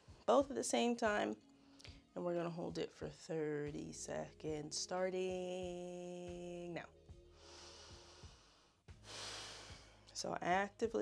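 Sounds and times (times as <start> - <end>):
faint background music: 0.0 - 11.0
soft long breath out: 7.3 - 10.0.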